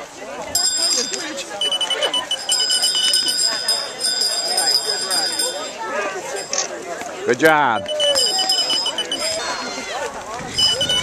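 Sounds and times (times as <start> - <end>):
voices talking in background: 0.0 - 11.0
rapid high electronic beeps: 1.6 - 3.3, 7.8 - 9.4, 10.6 - 11.0.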